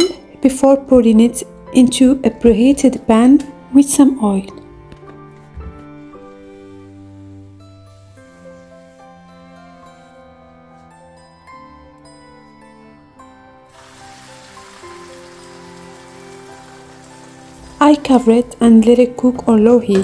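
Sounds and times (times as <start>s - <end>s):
soft background music: 0.0s - 20.0s
egg sizzling in a frying pan: 13.7s - 18.0s.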